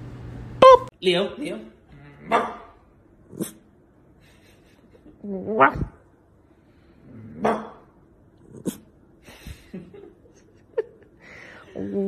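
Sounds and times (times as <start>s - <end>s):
puppy half-formed bark: 2.2s - 2.8s, 7.4s - 7.9s.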